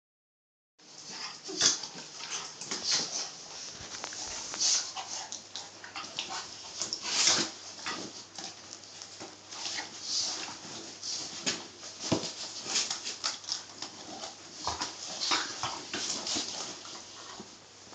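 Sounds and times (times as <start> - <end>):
dogs play-fighting: 0.8 - 17.6.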